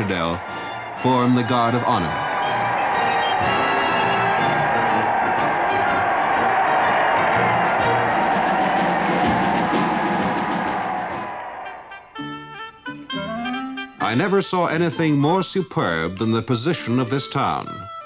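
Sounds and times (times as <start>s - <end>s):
brass band music: 0.0s - 15.1s.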